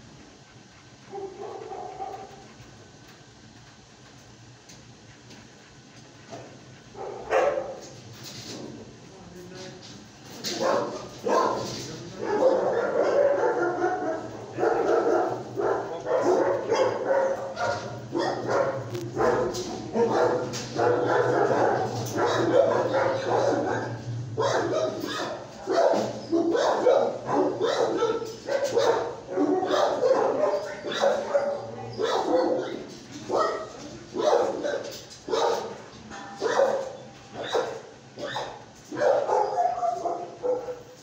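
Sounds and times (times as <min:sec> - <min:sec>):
steady low hum: 0:00.0 - 0:34.2
dogs barking and yipping: 0:01.1 - 0:02.5, 0:06.9 - 0:07.9, 0:10.5 - 0:41.0.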